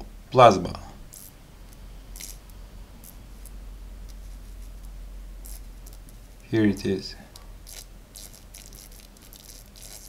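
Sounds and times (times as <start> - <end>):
steady low hum: 0.0 - 10.0
tesla coil spark crackling: 1.0 - 6.5, 7.4 - 10.0.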